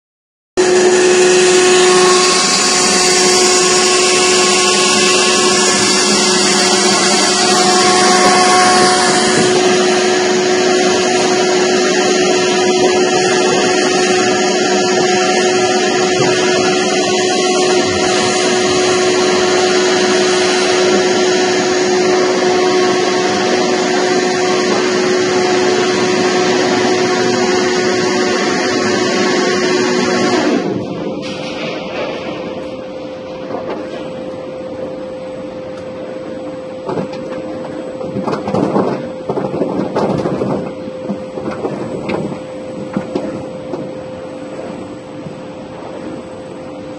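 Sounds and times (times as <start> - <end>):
vacuum transfer machine running: 0.6 - 46.9.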